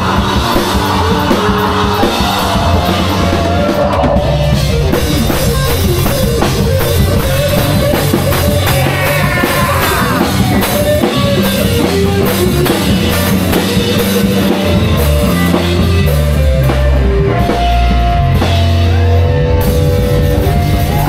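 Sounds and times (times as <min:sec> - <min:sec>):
drum kit beat: 0:00.0 - 0:21.0
electric bass: 0:00.0 - 0:21.0
electric guitar: 0:00.0 - 0:21.0.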